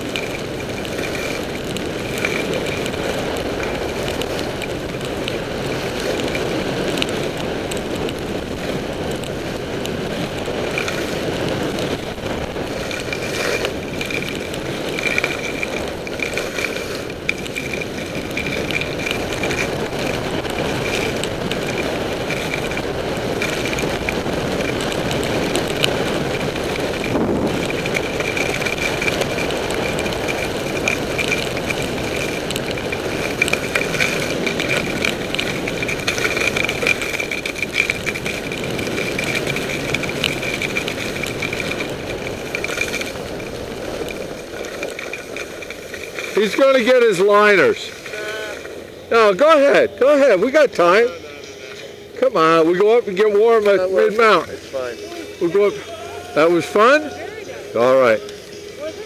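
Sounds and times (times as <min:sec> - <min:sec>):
wind rushing over microphone: 0:00.0 - 0:51.1
skis scraping over snow: 0:00.0 - 0:59.0.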